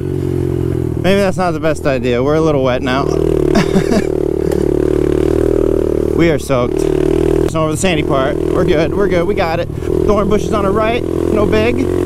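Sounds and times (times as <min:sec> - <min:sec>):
motorbike engine running: 0:00.0 - 0:12.0.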